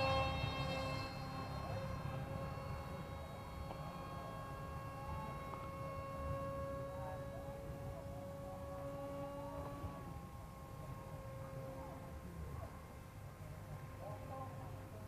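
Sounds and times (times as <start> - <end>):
electric motor and propeller whine: 0.0 - 15.0.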